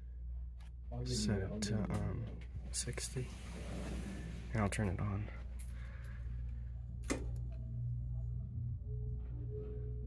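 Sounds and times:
air conditioner humming: 0:00.0 - 0:10.0.

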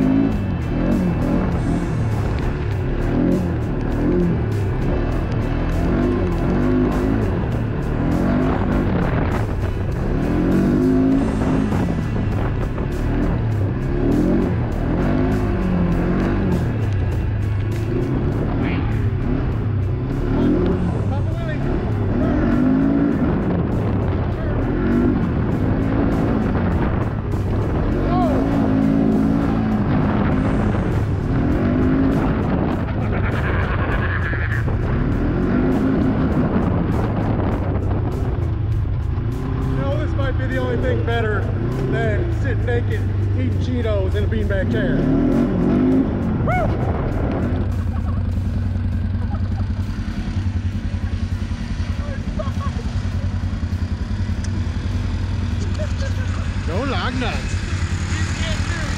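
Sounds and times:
atv engine revving: 0:00.0 - 0:58.9.

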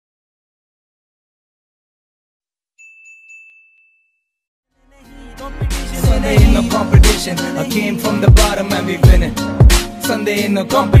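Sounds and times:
notification bell ding: 0:02.8 - 0:04.3
music: 0:04.7 - 0:11.0.

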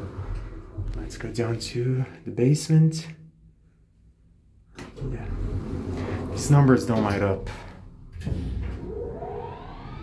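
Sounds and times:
elevator low rumble: 0:00.0 - 0:02.7, 0:04.8 - 0:10.0.

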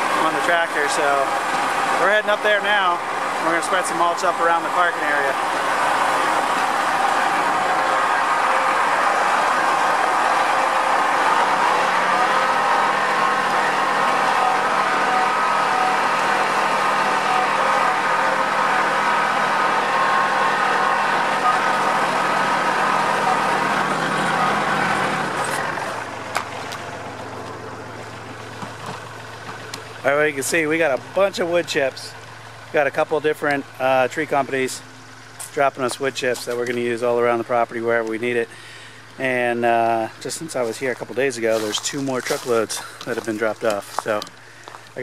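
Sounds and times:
tractor engine running: 0:00.0 - 0:45.0.

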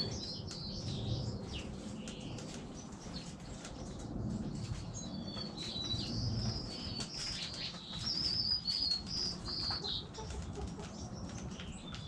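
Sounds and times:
small songbirds chirping: 0:00.0 - 0:12.0.

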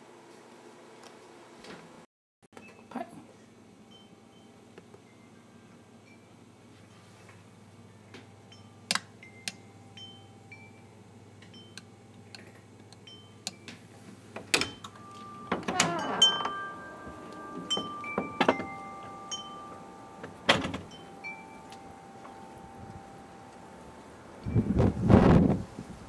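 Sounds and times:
wind chimes ringing: 0:03.8 - 0:07.1, 0:08.3 - 0:12.0, 0:13.0 - 0:13.7, 0:14.6 - 0:25.5
sharp clicks and knocks: 0:17.3 - 0:21.0.

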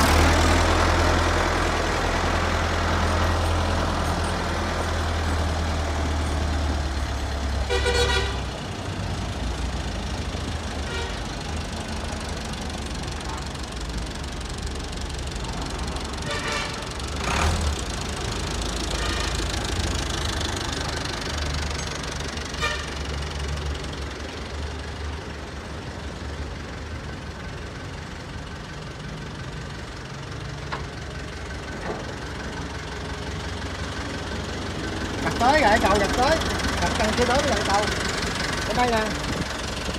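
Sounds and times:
tractor diesel engine running: 0:00.0 - 0:39.9.

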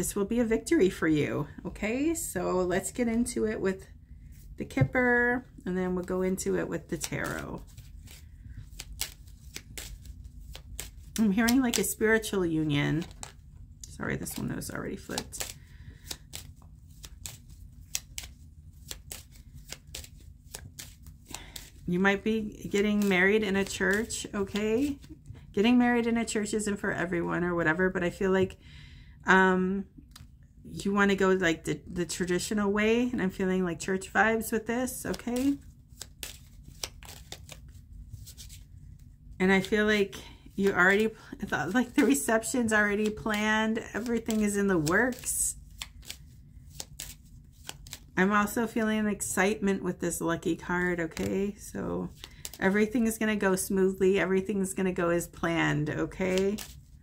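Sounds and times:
low room hum: 0:00.0 - 0:57.0
cards being shuffled: 0:04.3 - 0:26.7, 0:34.4 - 0:48.6, 0:50.6 - 0:53.4, 0:55.3 - 0:57.0.

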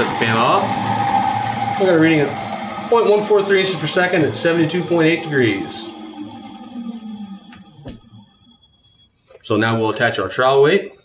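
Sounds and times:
electric motor hum running down: 0:00.0 - 0:08.6
high-pitched whine: 0:00.0 - 0:10.4.

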